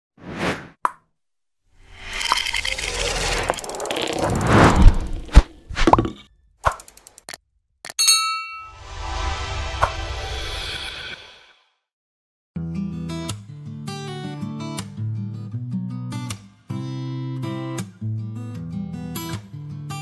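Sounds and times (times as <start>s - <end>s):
quick clicks: 6.6s - 7.4s.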